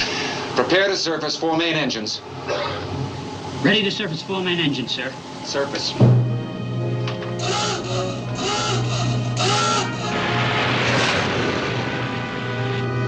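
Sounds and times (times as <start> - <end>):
submarine klaxon blasts: 2.2 - 13.0
dramatic orchestral film music: 5.2 - 13.0.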